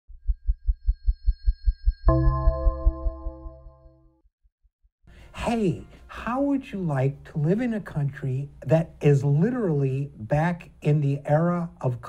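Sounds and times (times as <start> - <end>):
deep electronic pulse: 0.1 - 4.2.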